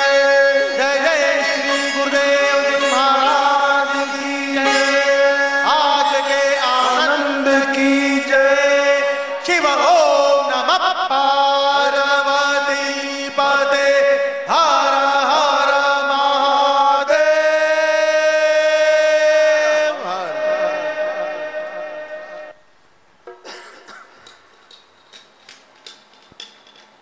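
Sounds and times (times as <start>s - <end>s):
devotional chant singing: 0.0s - 22.6s
steady drone: 20.2s - 22.6s.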